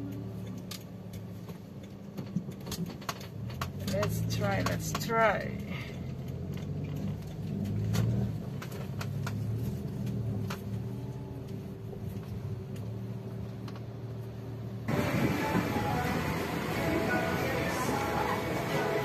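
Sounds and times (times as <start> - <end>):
car engine hum from inside: 0.0 - 19.0
background music: 14.9 - 19.0.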